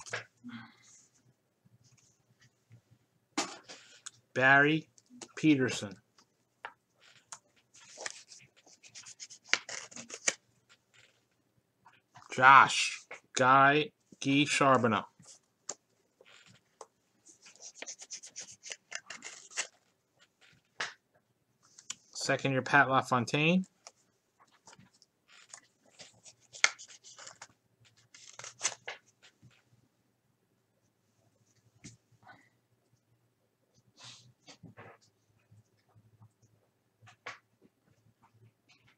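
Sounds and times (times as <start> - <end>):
handling of cardboard trading cards: 6.6 - 11.3, 15.2 - 21.0, 23.7 - 29.6
card rustling: 7.0 - 11.2, 14.3 - 20.8, 23.7 - 29.6.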